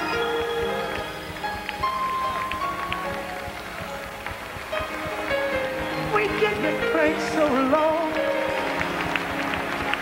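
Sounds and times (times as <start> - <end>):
soft musical accompaniment: 0.0 - 10.0
woman singing gospel: 6.1 - 8.4.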